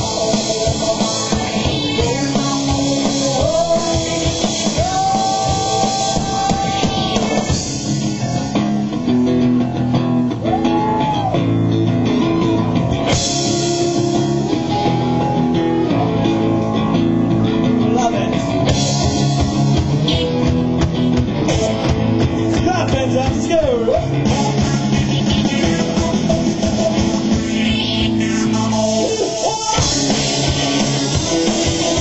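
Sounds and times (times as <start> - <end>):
rock band playing live: 0.0 - 32.0.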